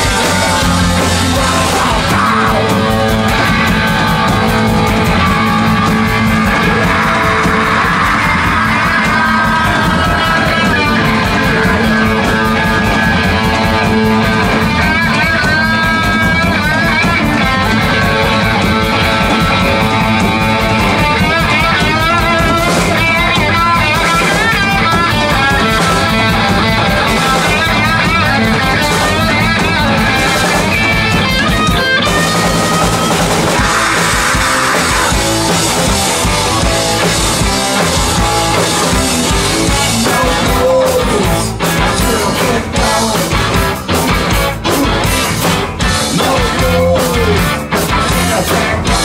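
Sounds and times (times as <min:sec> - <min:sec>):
drum kit: 0:00.0 - 0:49.0
electric bass: 0:00.0 - 0:49.0
electric guitars: 0:00.0 - 0:49.0.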